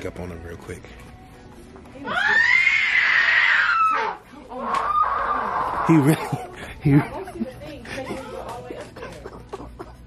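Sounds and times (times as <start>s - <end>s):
high-pitched scream: 2.0s - 6.0s.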